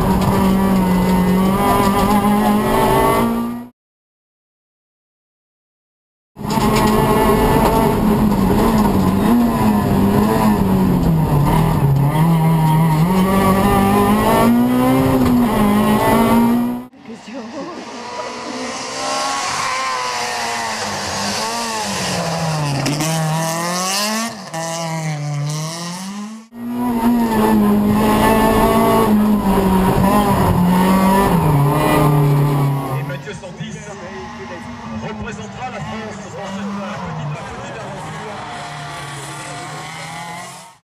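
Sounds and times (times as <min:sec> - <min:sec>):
rally car engine revving: 0:00.0 - 0:03.7, 0:06.4 - 0:40.8.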